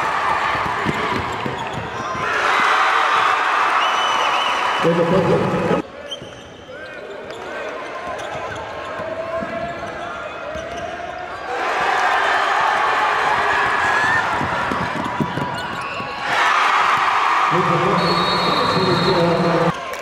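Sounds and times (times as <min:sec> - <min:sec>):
crowd noise: 0:00.0 - 0:20.0
sneakers squeaking: 0:00.6 - 0:02.2, 0:06.0 - 0:11.2, 0:13.8 - 0:16.3.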